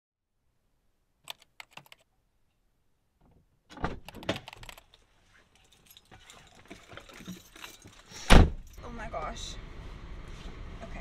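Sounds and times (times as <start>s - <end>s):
sharp clicks: 1.2s - 2.0s
clattering and rattling: 3.7s - 8.8s
thump: 8.3s - 8.7s.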